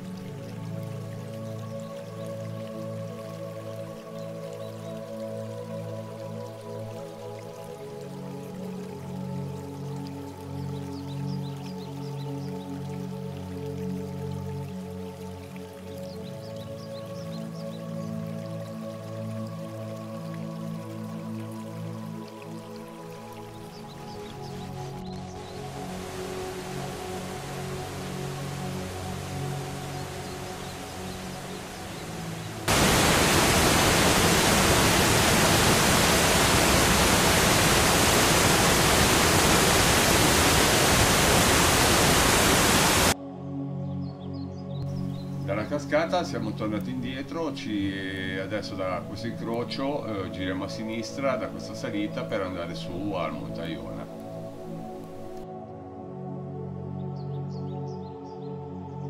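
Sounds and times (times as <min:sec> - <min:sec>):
waterfall rushing: 0:00.0 - 0:01.3, 0:25.5 - 0:43.2
water rushing: 0:00.0 - 0:05.3, 0:21.3 - 0:43.2, 0:53.4 - 0:55.4
background music: 0:00.0 - 0:59.0.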